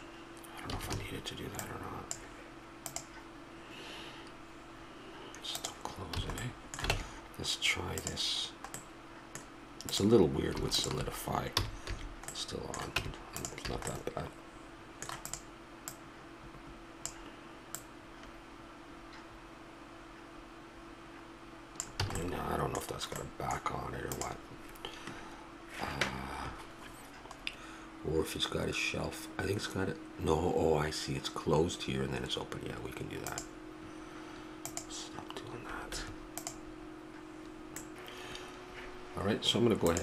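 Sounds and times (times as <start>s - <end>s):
steady low hum: 0.0s - 40.0s
mouse clicks: 2.8s - 3.2s, 15.0s - 16.0s, 34.6s - 34.9s, 36.4s - 36.6s
keyboard keystrokes: 2.9s - 3.1s, 15.0s - 16.0s, 21.8s - 22.3s.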